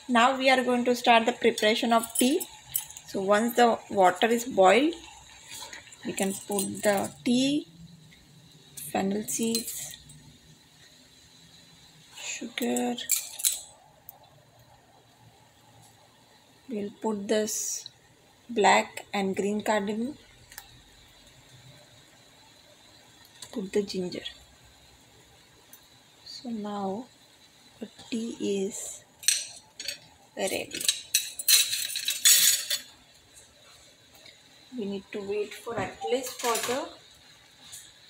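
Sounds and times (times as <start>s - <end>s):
harsh metallic hissing bursts: 0.0s - 14.1s, 15.0s - 38.0s
pot bubbling on the boil: 0.0s - 38.0s
metal spoon clinking on saucepan: 13.0s - 13.7s.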